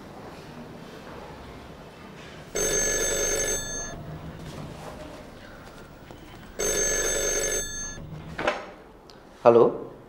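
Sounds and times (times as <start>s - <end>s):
telephone ringing: 2.5s - 4.6s, 5.3s - 8.4s.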